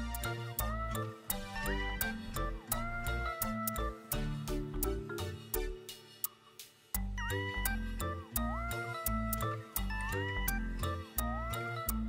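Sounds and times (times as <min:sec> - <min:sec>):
heavy beat and bass line: 0:00.0 - 0:12.0
high lead with sliding notes: 0:00.0 - 0:12.0.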